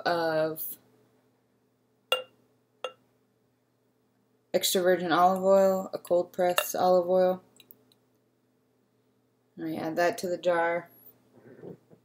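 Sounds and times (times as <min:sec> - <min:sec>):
glass clinking on glass: 0:02.1 - 0:03.0.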